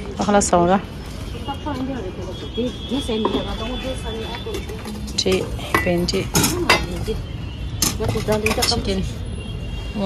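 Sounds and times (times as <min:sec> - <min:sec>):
metal bowls and spoons clinking: 0:03.1 - 0:07.2, 0:07.8 - 0:09.1.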